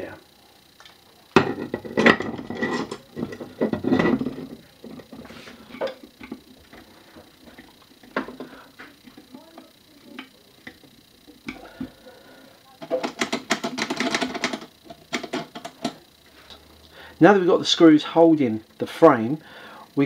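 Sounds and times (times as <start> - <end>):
rapid clicking and rattling: 12.7 - 16.1.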